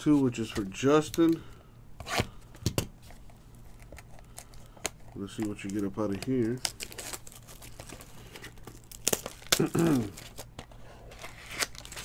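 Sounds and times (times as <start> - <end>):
plastic shrink wrap crinkling: 3.1 - 12.0
person clearing throat: 9.5 - 10.2.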